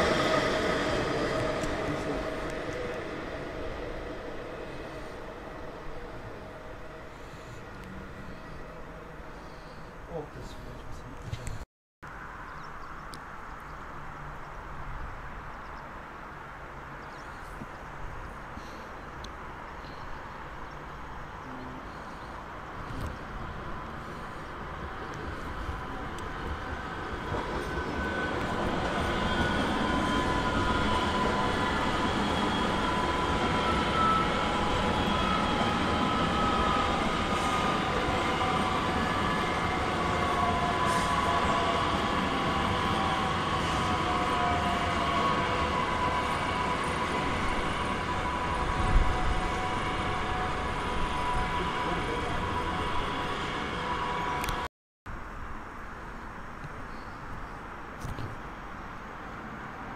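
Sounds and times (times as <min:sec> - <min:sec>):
wheels rumbling on rail: 0:00.0 - 0:09.4, 0:19.5 - 0:54.6.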